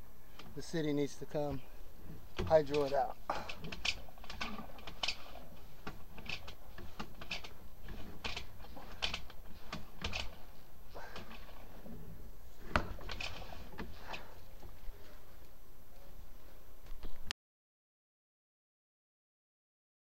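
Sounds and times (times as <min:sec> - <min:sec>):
cable clicking and rattling in pipe: 0:00.3 - 0:00.7, 0:01.6 - 0:12.0, 0:12.6 - 0:15.5.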